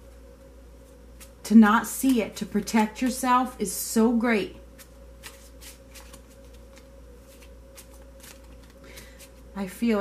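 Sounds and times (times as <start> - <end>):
low steady hum: 0.0 - 10.0
cards being shuffled: 0.8 - 1.4, 4.8 - 9.5.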